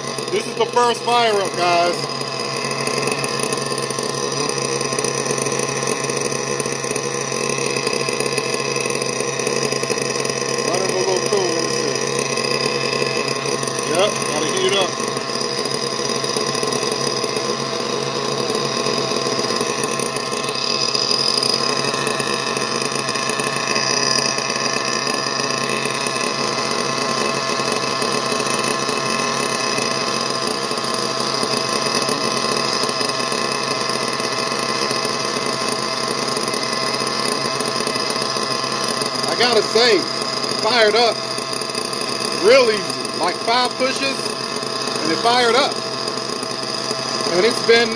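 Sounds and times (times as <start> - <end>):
model engine idling: 0.0 - 47.9.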